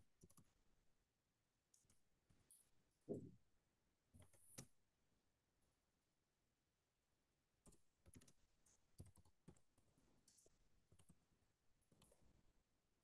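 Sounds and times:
typing on computer keyboard: 0.2s - 0.5s, 7.6s - 8.4s, 9.0s - 9.7s.

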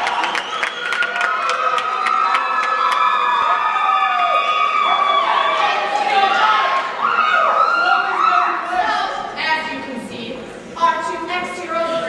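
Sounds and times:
audience clapping: 0.0s - 3.6s
audience cheering and whooping: 0.0s - 8.7s.

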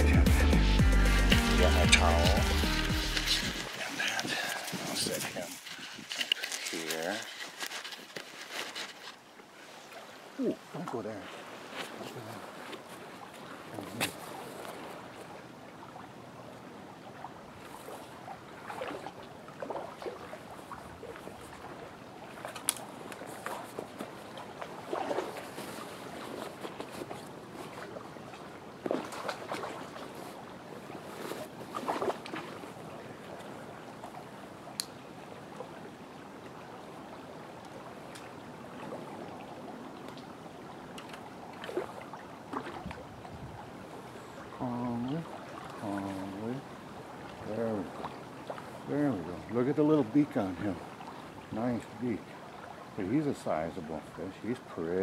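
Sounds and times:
stream flowing: 0.0s - 55.0s
boots splashing in shallow water: 1.3s - 16.0s, 17.6s - 34.2s, 38.1s - 43.3s.

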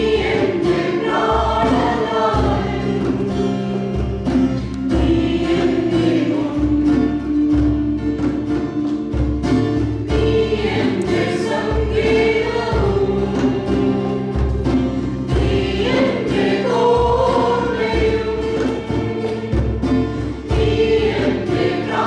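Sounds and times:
choir singing: 0.0s - 7.7s, 10.0s - 22.0s.

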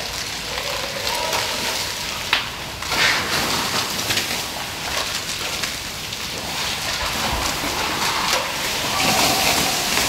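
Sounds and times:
fire crackling and hissing: 0.0s - 10.0s.

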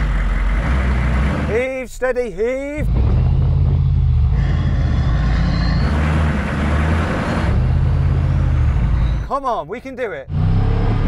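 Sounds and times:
off-road engines droning: 0.0s - 11.0s.

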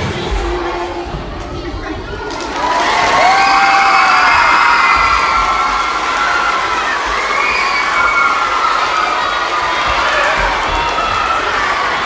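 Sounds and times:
children cheering and screaming: 2.3s - 12.0s.

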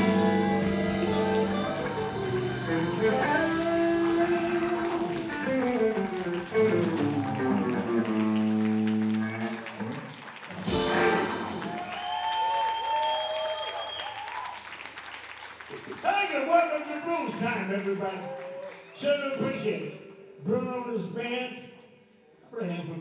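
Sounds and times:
electric blues band playing: 0.0s - 12.2s
audience applause and cheering: 0.0s - 19.4s
drum and cymbal hit: 10.6s - 11.9s.

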